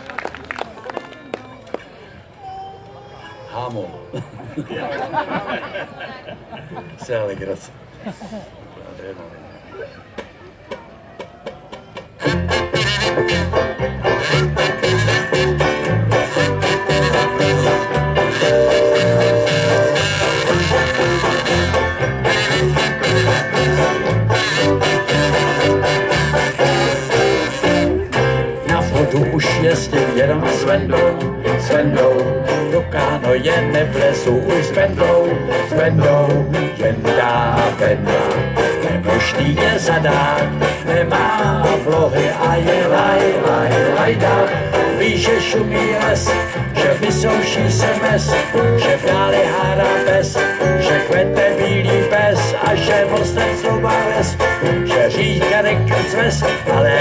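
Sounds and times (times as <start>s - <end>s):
electric bass: 12.2s - 57.0s.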